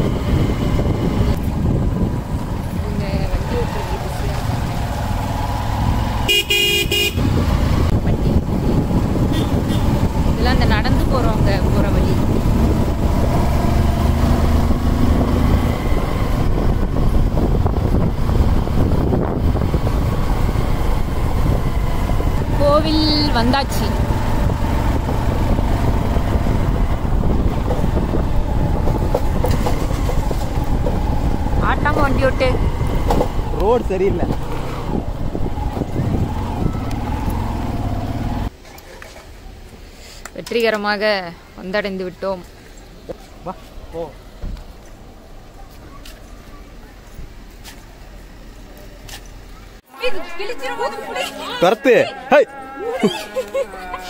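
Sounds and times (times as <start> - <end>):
wind noise on microphone: 0.0 - 6.1, 6.8 - 38.5
motorcycle engine running: 0.0 - 38.5
horn honking: 6.1 - 7.5, 9.2 - 10.0, 50.0 - 54.0.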